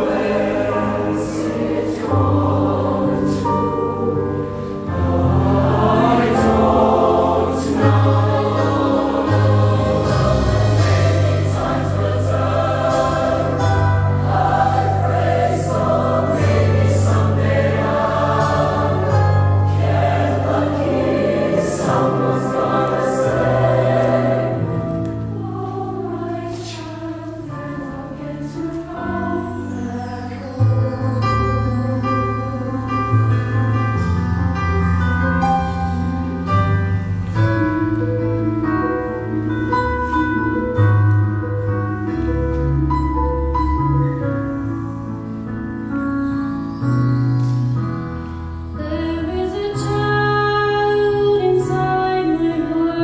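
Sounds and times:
choir singing in harmony: 0:00.0 - 0:42.5, 0:44.1 - 0:53.0.

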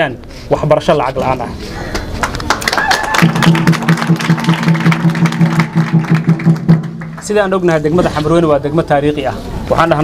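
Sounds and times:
people clapping in rhythm: 0:01.9 - 0:07.6.

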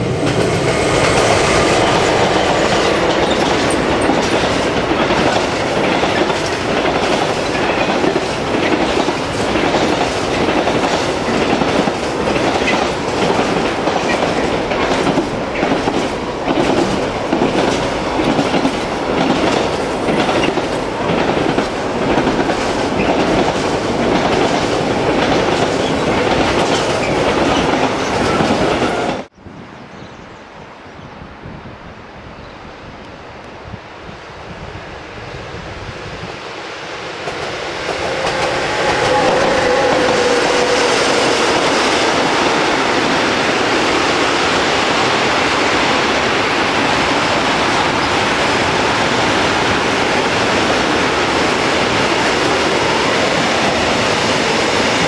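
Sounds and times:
train wheels rumbling on rail: 0:00.0 - 0:29.3, 0:34.6 - 0:55.0
wheels clickety-clack over rail joints: 0:00.0 - 0:29.3.

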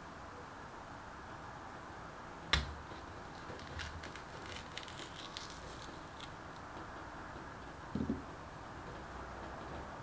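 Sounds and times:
metal spoon scraping fruit skin: 0:03.3 - 0:06.4.

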